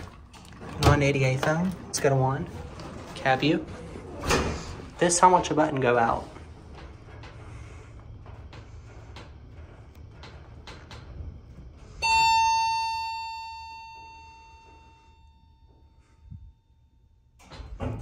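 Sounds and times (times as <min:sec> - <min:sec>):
elevator low hum: 0:00.0 - 0:18.0
elevator arrival chime: 0:11.8 - 0:17.2.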